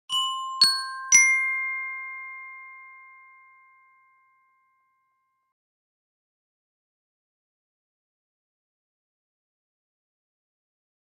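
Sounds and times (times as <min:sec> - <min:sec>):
rising chime jingle: 0:00.1 - 0:03.3.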